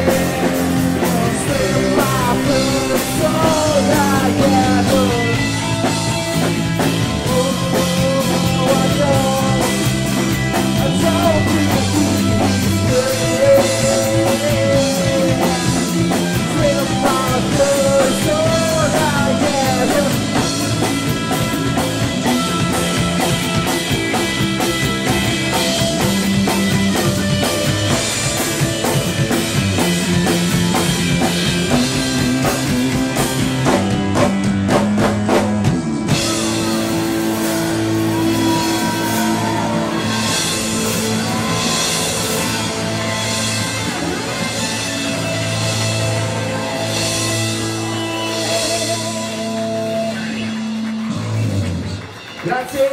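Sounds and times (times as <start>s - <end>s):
held guitar and bass notes: 0.0s - 52.5s
rock band playing: 0.0s - 52.9s.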